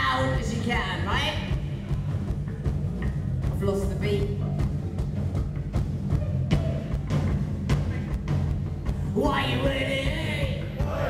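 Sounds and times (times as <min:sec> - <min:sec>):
rock band instrumental groove: 0:01.5 - 0:11.0.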